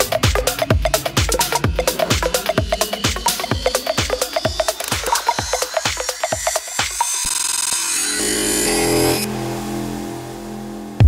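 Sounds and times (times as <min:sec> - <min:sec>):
low synth chords: 0:00.0 - 0:06.6, 0:08.6 - 0:11.0.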